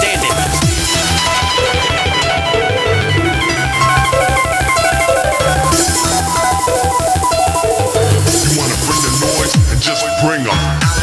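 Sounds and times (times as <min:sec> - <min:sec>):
fast electronic dance music: 0:00.0 - 0:11.0.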